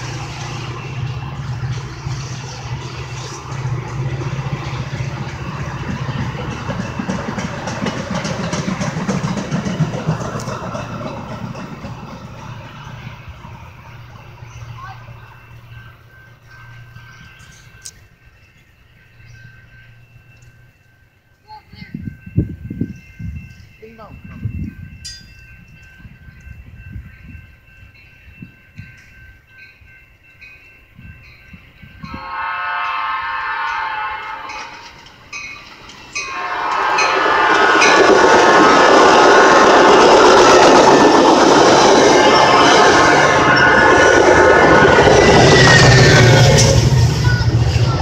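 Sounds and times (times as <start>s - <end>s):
train wheels clattering over rails: 0.0s - 13.5s, 34.6s - 48.0s
train horn blasts: 32.0s - 34.9s, 36.2s - 40.0s, 41.9s - 48.0s.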